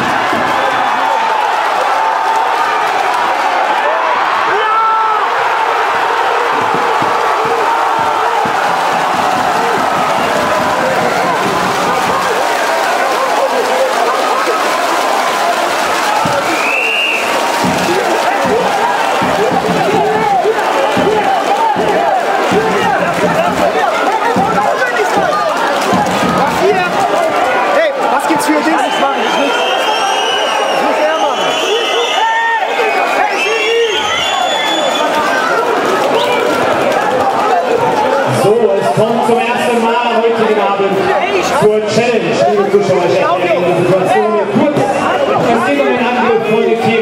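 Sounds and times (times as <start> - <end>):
crowd shouting and cheering: 0.0 - 47.0
shrill whistles: 16.4 - 17.4, 28.6 - 35.4.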